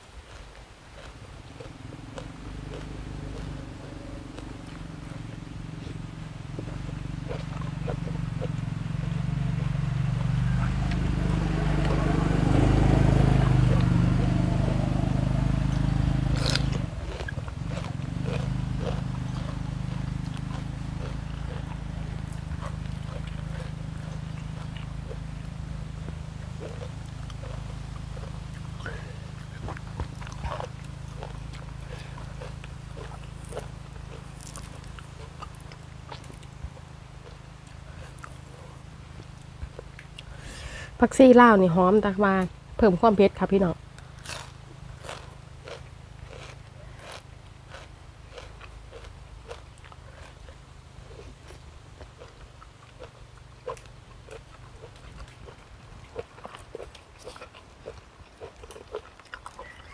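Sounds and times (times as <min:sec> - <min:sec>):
chewing crisp food: 0:00.0 - 0:42.5, 0:43.5 - 0:59.9
low steady rumble: 0:00.0 - 0:59.9.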